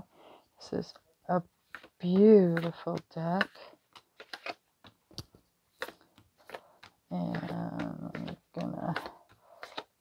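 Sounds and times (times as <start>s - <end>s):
cards being shuffled by hand: 1.6s - 10.0s.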